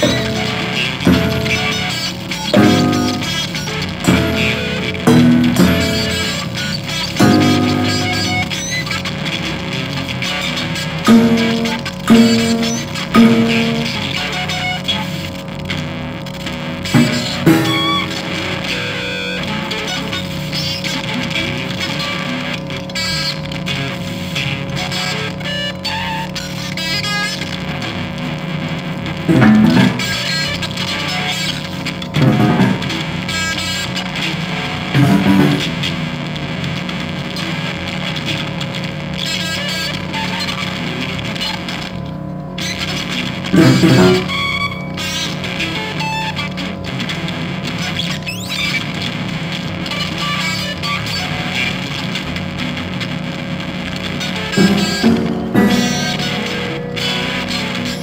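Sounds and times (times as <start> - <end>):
loud low notes: 0.0 - 8.7, 11.1 - 14.2, 17.0 - 18.8, 29.3 - 30.2, 32.2 - 33.2, 35.0 - 35.8, 43.6 - 44.4, 54.6 - 58.0
electronic drone: 0.0 - 28.0, 28.6 - 58.0
distorted electric guitar: 0.0 - 58.0.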